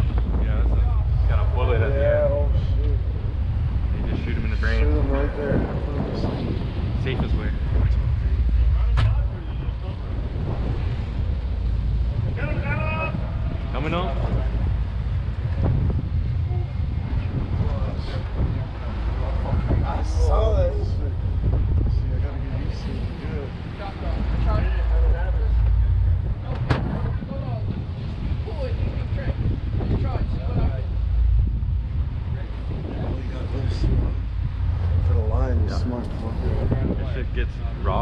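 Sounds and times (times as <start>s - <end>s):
boat engines rumbling: 0.0s - 38.0s
faint voices: 0.0s - 38.0s
wind buffeting microphone: 0.0s - 38.0s.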